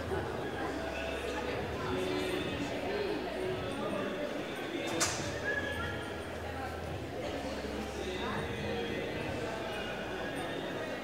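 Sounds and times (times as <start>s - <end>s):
indistinct echoing voices: 0.0s - 11.0s.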